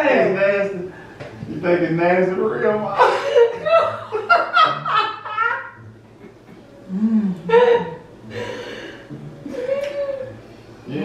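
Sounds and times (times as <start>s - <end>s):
person laughing: 3.0s - 8.5s.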